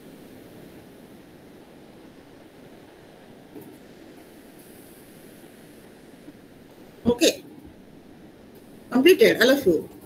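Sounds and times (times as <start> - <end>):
call line hiss: 0.0 - 7.4.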